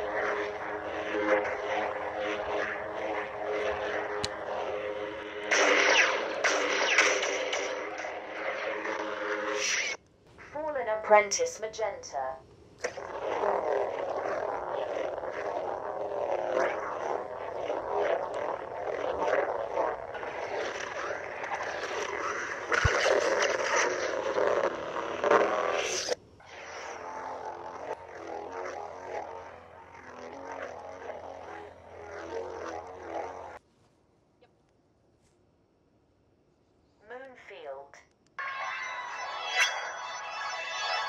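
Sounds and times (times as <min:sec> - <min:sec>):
lightsaber swing and clash effects: 0:00.0 - 0:10.0
lightsaber blade hum: 0:00.0 - 0:10.5, 0:12.8 - 0:33.6, 0:38.4 - 0:41.0.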